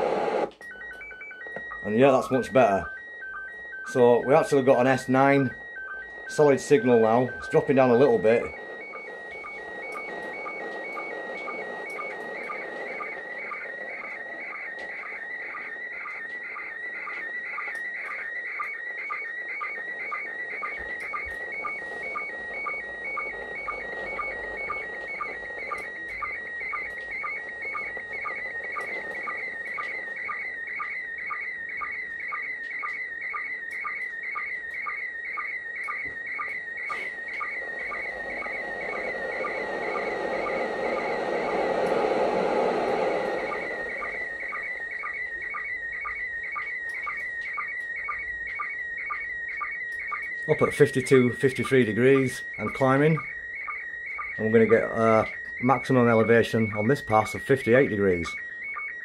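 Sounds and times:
radio noise hiss: 0.0 - 0.5, 1.8 - 2.9, 3.9 - 17.3, 19.4 - 30.2, 36.9 - 45.5, 50.5 - 53.3, 54.3 - 58.4
low sync blips: 0.0 - 59.0
warbling whistling tone: 0.7 - 58.9.

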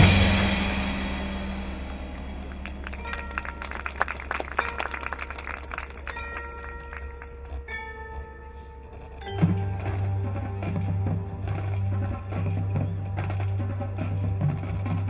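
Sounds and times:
marching band chord: 0.0 - 7.0
ringing bell-like notes: 0.0 - 14.7
mallet percussion notes: 0.0 - 15.0.

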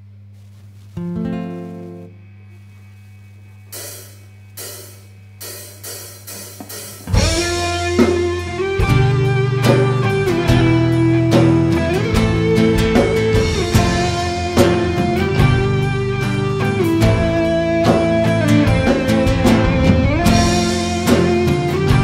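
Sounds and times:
amplifier hum: 0.0 - 22.0
acoustic guitar arpeggio: 1.0 - 2.1
cymbal strokes: 3.7 - 8.8
rock band playing: 3.8 - 22.0.

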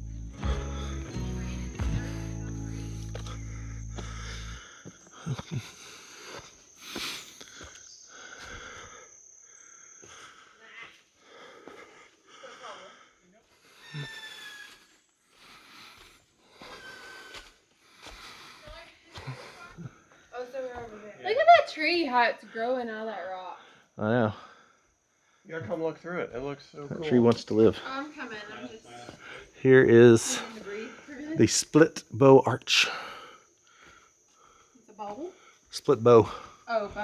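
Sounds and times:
background music: 0.0 - 3.8
person breathing heavily: 0.2 - 20.3, 28.9 - 29.6, 32.8 - 36.9.

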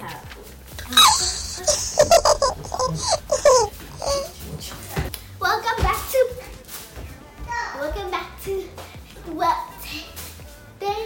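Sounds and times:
girl laughing: 0.8 - 4.4.

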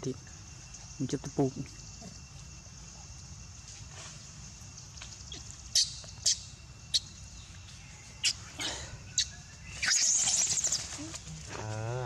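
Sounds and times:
high animal chirps: 5.2 - 7.2, 8.2 - 11.3.

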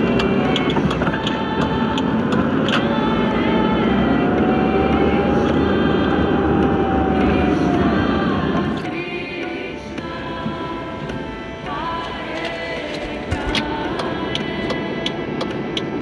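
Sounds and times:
vehicle engine and road noise: 0.0 - 16.0.

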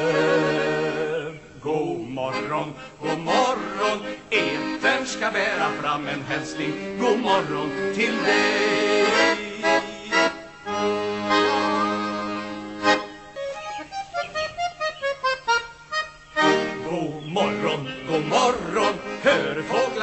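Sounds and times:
button accordion playing: 0.0 - 1.3, 2.3 - 20.0.

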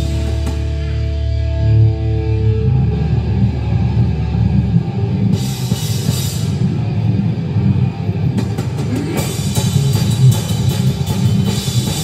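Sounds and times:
distorted guitar and bass riff: 0.0 - 12.0.

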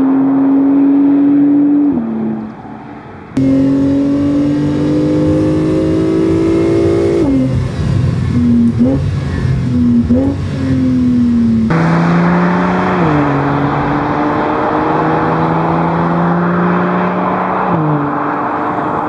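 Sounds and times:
road and wind noise: 0.0 - 19.0
engine rev blips: 3.4 - 18.1
car engine accelerating: 3.4 - 19.0.

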